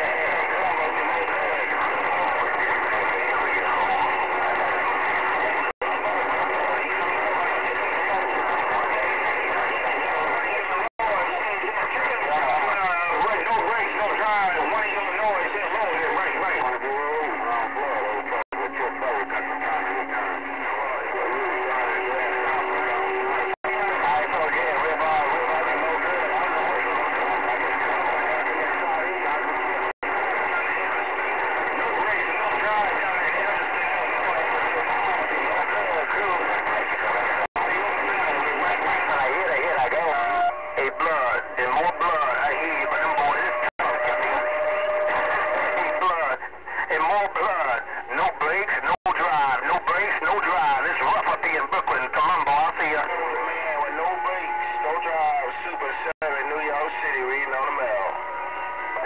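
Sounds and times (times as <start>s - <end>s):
garbled radio voices: 0.0s - 59.0s
radio static: 0.0s - 59.0s.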